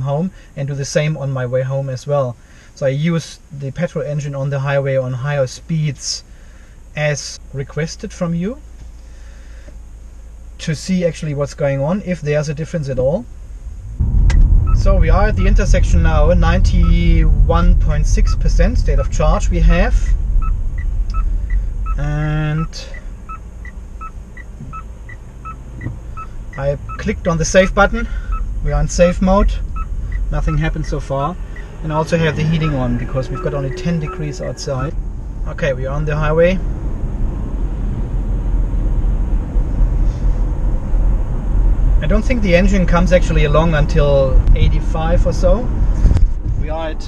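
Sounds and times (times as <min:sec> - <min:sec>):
low cabin rumble: 0:00.0 - 0:47.0
turn signal ticking: 0:16.2 - 0:35.4.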